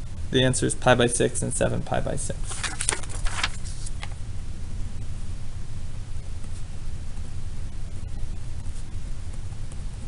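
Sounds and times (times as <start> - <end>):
paper rustling: 2.4 - 4.2.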